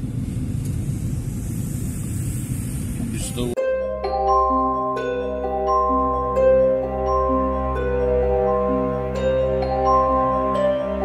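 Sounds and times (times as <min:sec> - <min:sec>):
car engine rumble from inside: 0:00.0 - 0:03.6.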